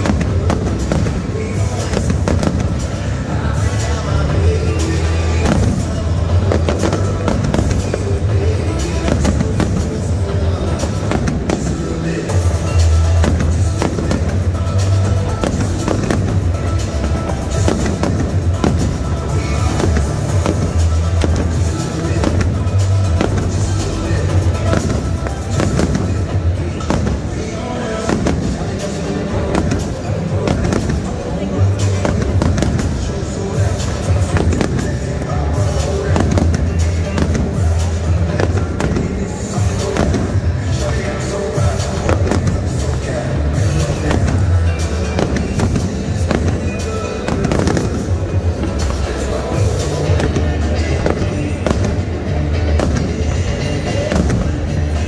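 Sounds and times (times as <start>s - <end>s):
fireworks bursting: 0.0s - 55.0s
loud music with heavy bass: 0.0s - 55.0s.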